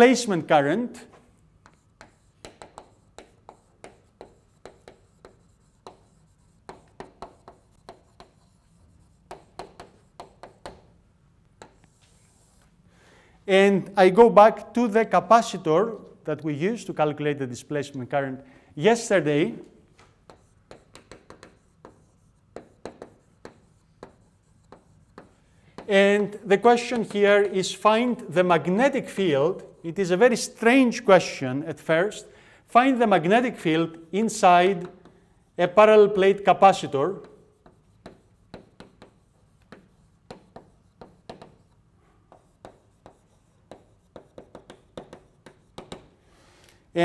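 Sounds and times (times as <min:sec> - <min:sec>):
man speaking: 0:00.0 - 0:01.1, 0:13.5 - 0:19.7, 0:25.9 - 0:34.9, 0:35.6 - 0:37.3
chalk tapping on blackboard: 0:01.1 - 0:10.9, 0:11.6 - 0:12.7, 0:19.6 - 0:28.3, 0:34.4 - 0:46.2.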